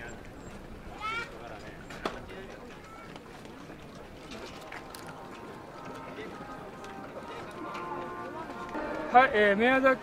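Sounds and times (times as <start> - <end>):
distant voices talking: 0.0 - 10.0.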